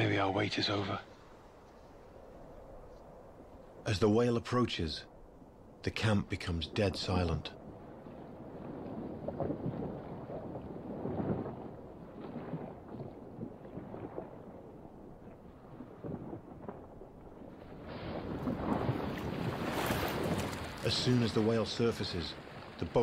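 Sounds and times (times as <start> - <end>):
open water rushing: 5.9 - 23.0
wind on microphone: 7.5 - 21.7.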